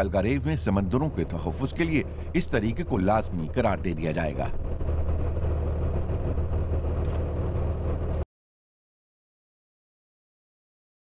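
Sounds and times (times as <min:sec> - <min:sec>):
boat engine humming: 0:00.0 - 0:08.2.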